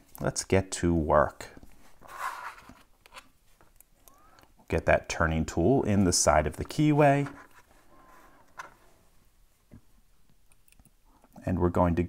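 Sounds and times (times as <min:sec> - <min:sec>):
faint metal ticks of lock picks: 0:10.4 - 0:11.0.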